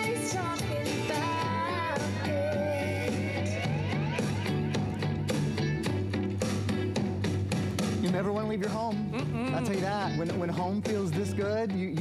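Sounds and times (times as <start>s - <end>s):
guitar over a steady beat: 0.0s - 12.0s
person singing: 9.2s - 10.0s.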